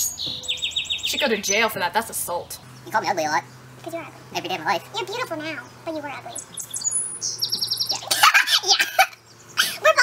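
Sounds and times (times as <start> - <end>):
songbird chirping: 0.0 - 10.0
young woman laughing: 8.0 - 9.8.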